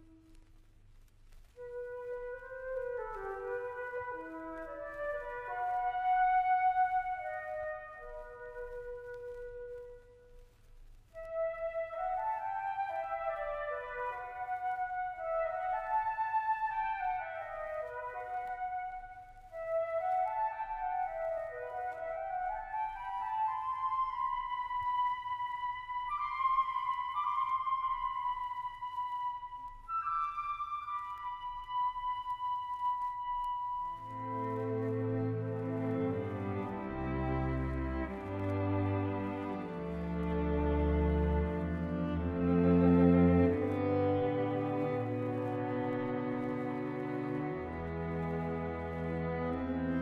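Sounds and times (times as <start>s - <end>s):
solo woodwind line: 0.0s - 50.0s.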